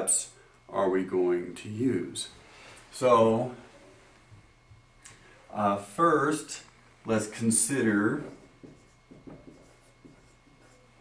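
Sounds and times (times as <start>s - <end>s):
marker writing on whiteboard: 7.8s - 11.0s.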